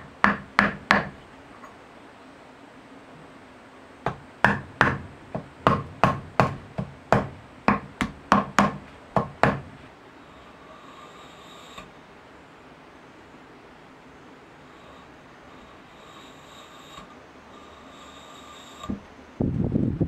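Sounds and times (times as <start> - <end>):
wooden mallet tapping blade: 4.1 - 9.7.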